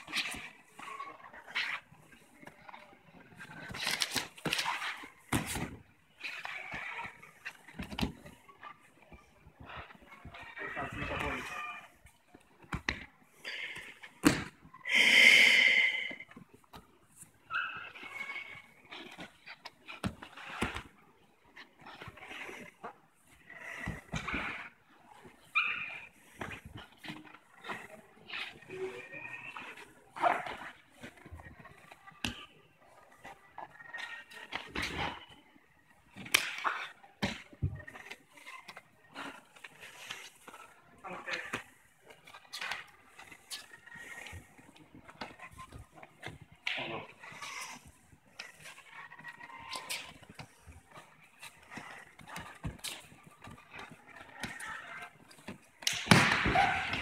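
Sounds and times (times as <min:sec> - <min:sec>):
bodies scuffling on mats: 0:00.0 - 0:14.7, 0:16.2 - 0:57.0.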